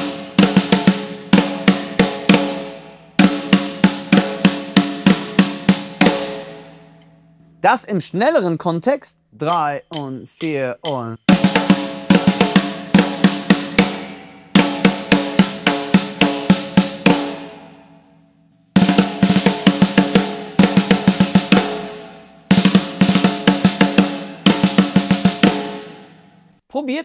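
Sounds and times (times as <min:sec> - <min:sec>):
snare drum played with sticks: 0:09.4 - 0:17.4, 0:18.8 - 0:26.0.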